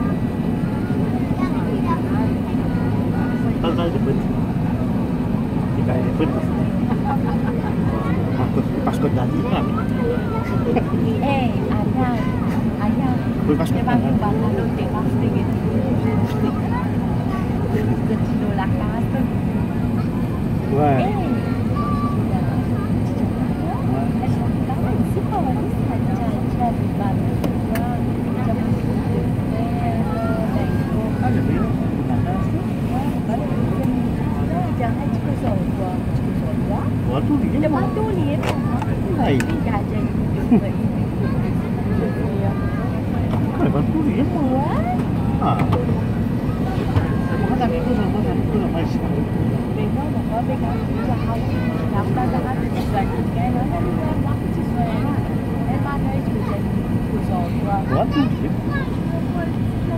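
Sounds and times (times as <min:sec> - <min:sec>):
aircraft cabin rumble: 0:00.0 - 0:59.9
indistinct passenger voices: 0:00.0 - 0:59.9.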